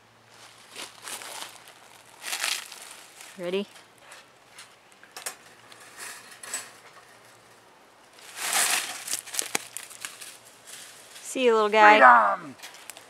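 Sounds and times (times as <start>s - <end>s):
leaves and pine needles rustling: 0.2s - 13.0s.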